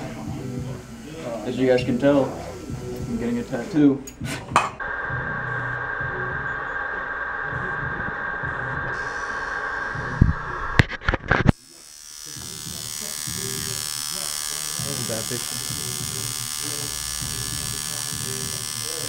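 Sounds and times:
tattoo machine buzzing: 0.0 - 3.8, 5.0 - 19.0.

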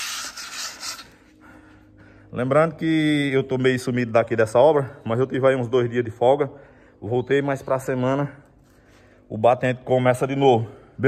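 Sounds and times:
phone rubbing against hat brim: 0.0 - 1.2.

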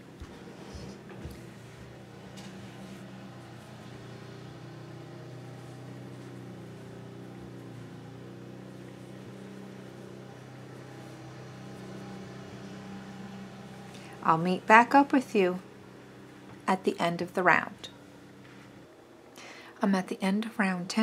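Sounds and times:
steady low machine hum: 0.0 - 21.0.

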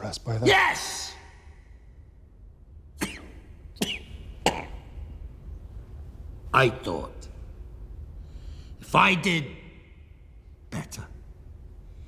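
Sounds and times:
man coughing: 3.0 - 5.0.

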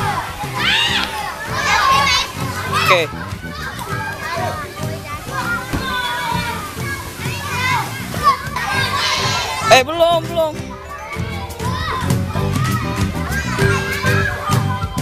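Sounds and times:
young children talking and calling out: 0.0 - 15.0.

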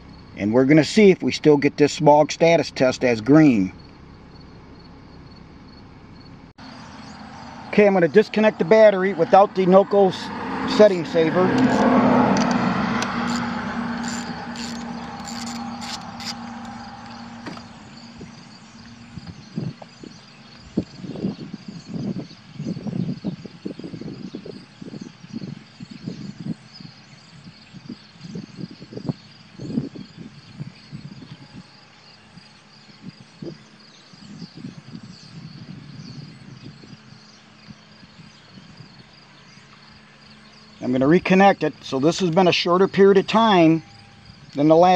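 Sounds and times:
hum: 11.5 - 21.7.

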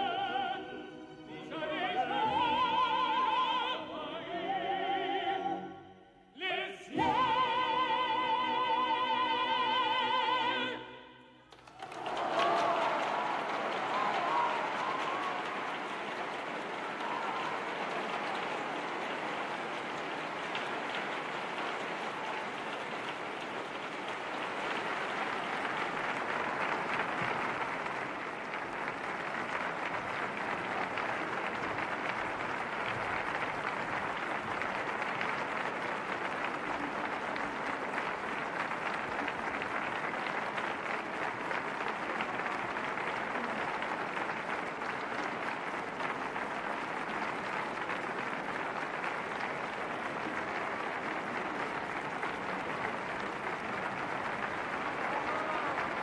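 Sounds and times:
audience applauding: 11.5 - 56.0.

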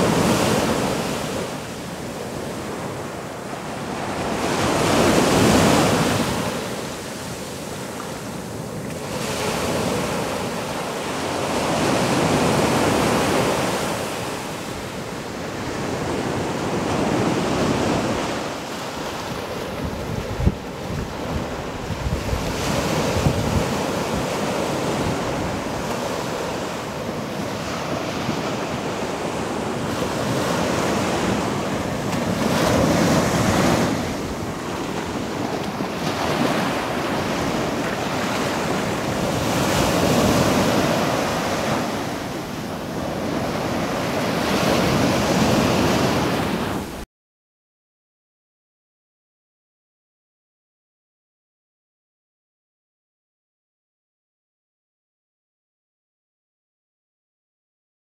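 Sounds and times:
wind buffeting microphone: 19.4 - 26.4.

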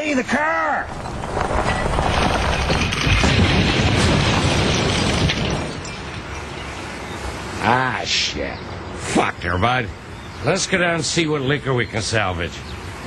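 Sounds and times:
crunching metal: 0.0 - 7.4
rock tumbling: 0.7 - 6.6
glass breaking: 0.9 - 6.9.

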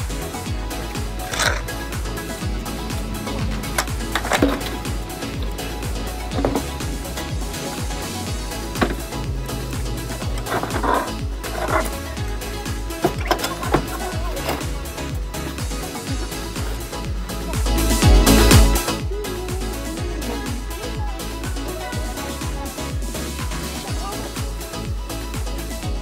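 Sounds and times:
music with bass line: 0.0 - 26.0
wooden debris knocking: 3.0 - 5.6, 6.3 - 7.1, 8.7 - 12.1, 13.0 - 14.8.

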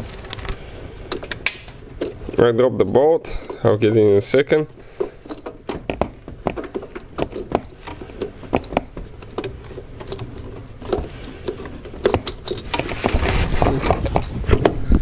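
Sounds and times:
clicks and knocks of parts: 0.2 - 4.1, 4.7 - 15.0
rustling: 4.8 - 15.0.

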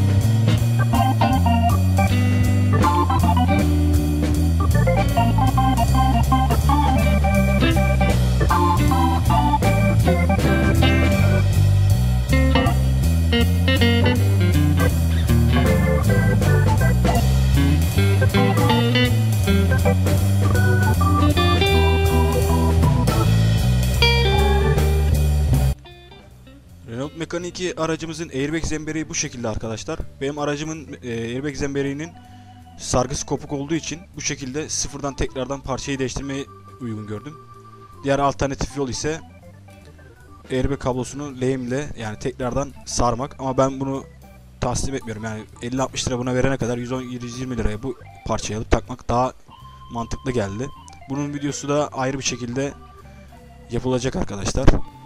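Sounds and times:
music with heavy bass beat: 0.0 - 25.8.

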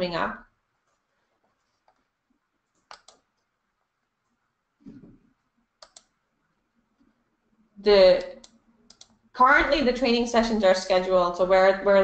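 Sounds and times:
computer key clicks: 2.7 - 3.3, 5.8 - 6.1, 8.4 - 9.2.

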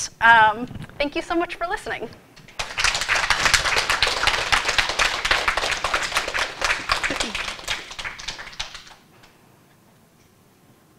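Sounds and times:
small audience applauding: 2.4 - 9.4.

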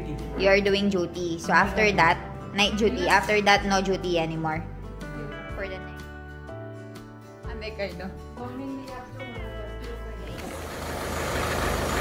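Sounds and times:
background music: 0.0 - 10.6
vehicle engine running: 10.2 - 12.0.

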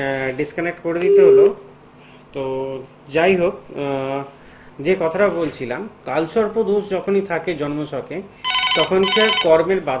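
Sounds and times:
telephone ringing: 8.4 - 9.6
person talking: 8.8 - 10.0.

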